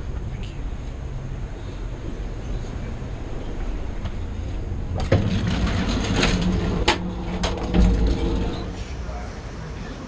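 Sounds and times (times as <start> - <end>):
moving train rumble: 0.0 - 10.0.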